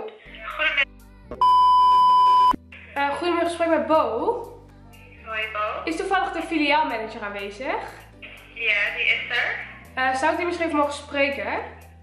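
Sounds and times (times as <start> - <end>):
censor bleep: 1.4 - 2.6.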